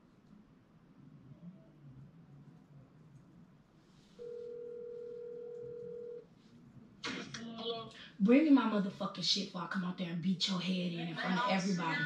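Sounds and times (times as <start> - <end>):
telephone ringback tone: 4.2 - 6.2.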